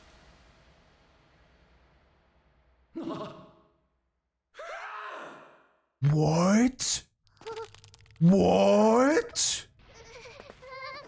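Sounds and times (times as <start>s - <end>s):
person shouting: 6.0s - 7.0s, 8.2s - 9.6s
person exclaiming: 6.0s - 9.6s.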